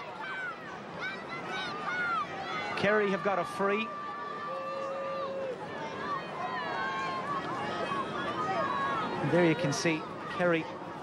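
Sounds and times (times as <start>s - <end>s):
high-pitched crowd shouts: 0.0s - 10.7s
crowd murmur: 0.0s - 11.0s.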